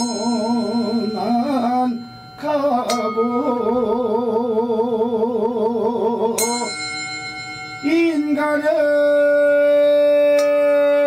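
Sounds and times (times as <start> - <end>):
metal bowl struck and ringing: 0.0 - 4.3, 6.4 - 9.2.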